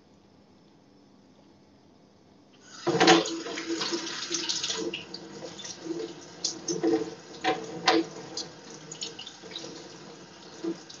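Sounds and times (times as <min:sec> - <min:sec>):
kitchen tap running: 0:02.6 - 0:11.0.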